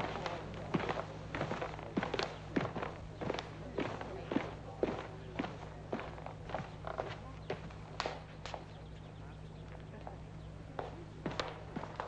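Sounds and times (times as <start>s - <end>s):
footsteps of hard-soled shoes: 0.0s - 7.7s, 10.8s - 12.0s
low steady hum: 0.0s - 12.0s.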